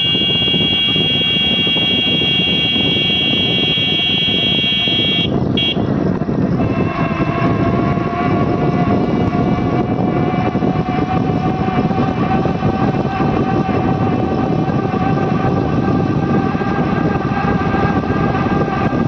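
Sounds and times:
sustained high tone: 0.0 - 5.8
wind and road noise: 0.0 - 19.0.

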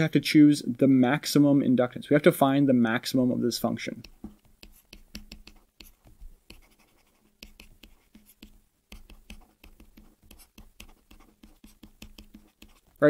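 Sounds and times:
stylus tapping on drawing tablet: 4.0 - 13.0.

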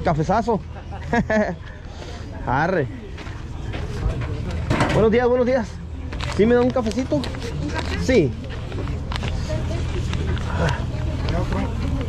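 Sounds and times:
faint voices: 0.0 - 12.0.

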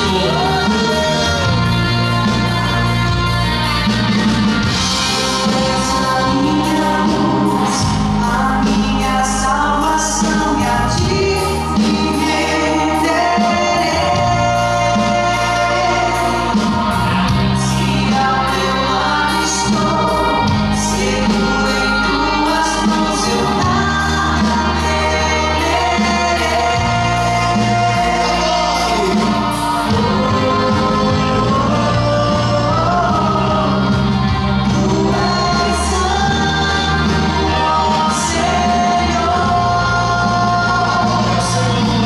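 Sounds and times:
electric guitar: 0.0 - 42.0
vocal group singing: 0.0 - 42.0.

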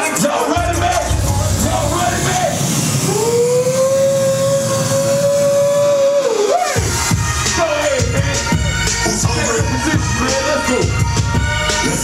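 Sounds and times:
background music with long high note: 0.0 - 12.0.

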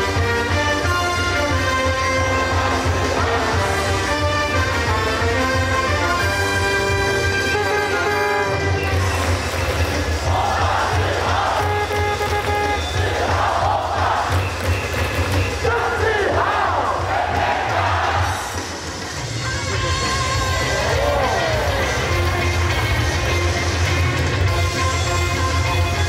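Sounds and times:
cheer song over stadium loudspeakers: 0.0 - 26.0
crowd chanting in unison: 10.1 - 11.8, 12.8 - 14.6, 15.6 - 18.6.

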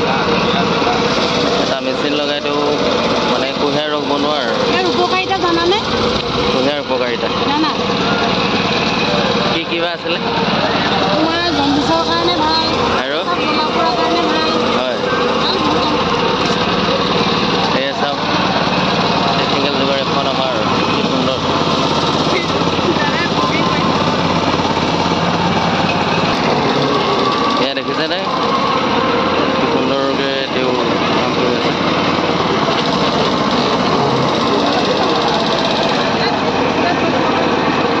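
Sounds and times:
people talking: 0.0 - 21.6, 22.2 - 28.5, 29.3 - 31.9, 32.5 - 38.0
roller mill crushing: 0.0 - 38.0
small petrol engine running: 0.0 - 38.0.

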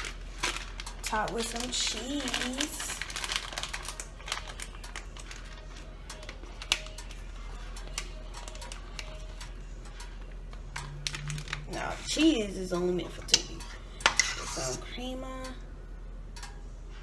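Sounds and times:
plastic packet crinkling: 0.0 - 9.4, 10.5 - 12.4.

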